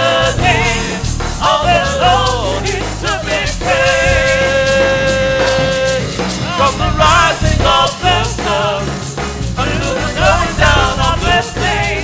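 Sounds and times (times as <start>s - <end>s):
gospel singing with band: 0.0s - 12.0s.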